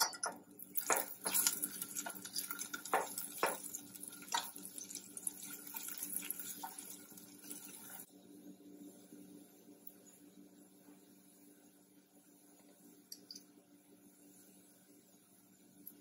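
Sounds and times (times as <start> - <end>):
spatula knocking and scraping pot: 0.0 - 4.6
garlic sizzling in hot oil: 0.6 - 8.1.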